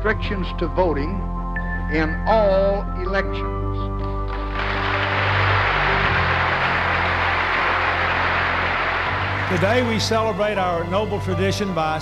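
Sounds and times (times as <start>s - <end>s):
low music bed: 0.0s - 12.0s
large audience applause: 4.3s - 10.5s.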